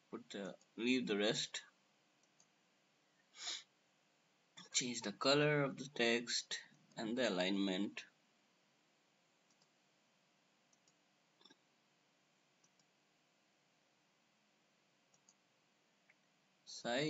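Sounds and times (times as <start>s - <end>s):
computer mouse clicks: 9.5s - 9.7s, 10.7s - 11.6s, 12.6s - 12.9s, 15.1s - 15.4s.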